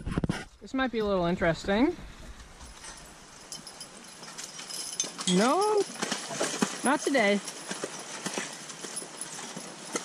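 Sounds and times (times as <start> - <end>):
horse hoof steps on mud: 4.3 - 10.0.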